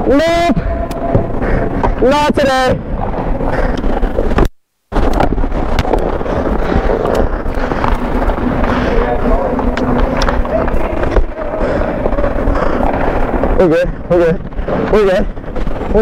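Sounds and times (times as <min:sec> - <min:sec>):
players' voices: 0:00.0 - 0:04.4, 0:05.4 - 0:16.0
sticks and pucks clacking: 0:03.5 - 0:13.6
skates scraping ice: 0:05.0 - 0:16.0.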